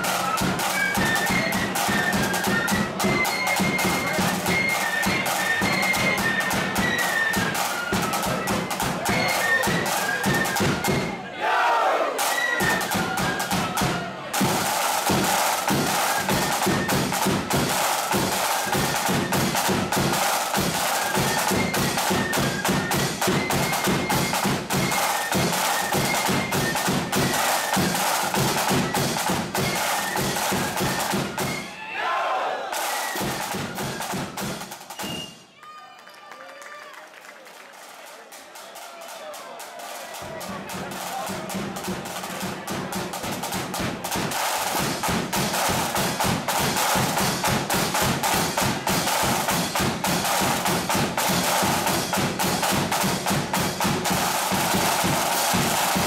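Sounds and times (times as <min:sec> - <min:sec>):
cymbals: 0:00.0 - 0:11.4, 0:12.0 - 0:31.8, 0:32.6 - 0:35.5, 0:39.9 - 0:56.0
snare drum rolls: 0:00.0 - 0:31.8, 0:32.4 - 0:35.5, 0:38.6 - 0:56.0
flutes playing melody: 0:00.0 - 0:35.6.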